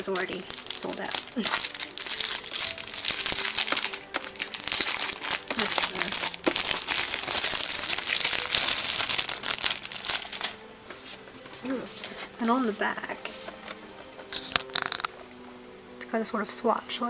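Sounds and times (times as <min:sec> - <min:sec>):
packaging crinkling and rustling: 0:00.0 - 0:12.6, 0:14.4 - 0:15.1.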